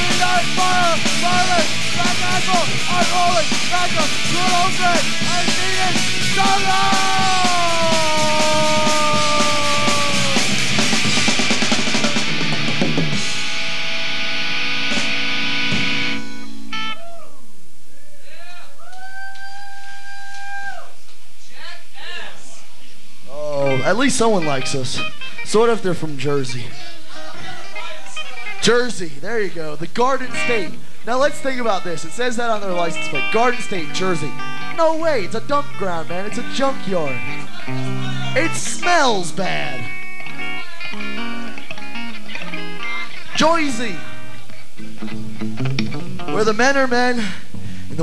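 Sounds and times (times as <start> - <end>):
amplified electric guitar: 0.0 - 17.4, 23.4 - 26.7, 29.8 - 48.0
person whooping: 6.3 - 10.7, 16.9 - 21.0
person howling: 6.4 - 10.7.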